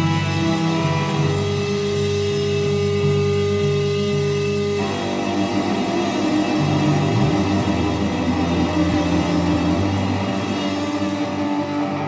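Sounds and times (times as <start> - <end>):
bass guitar playing: 0.0 - 12.0
electric guitar playing: 0.0 - 12.0.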